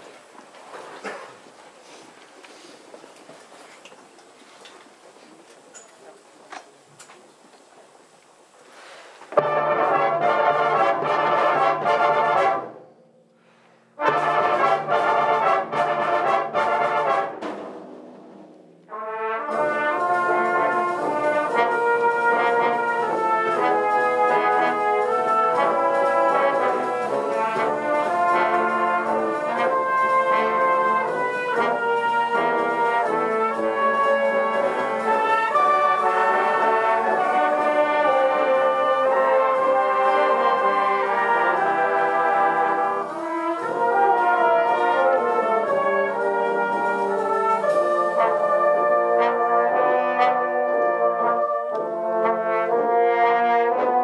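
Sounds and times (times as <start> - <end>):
brass band playing: 8.8 - 54.0.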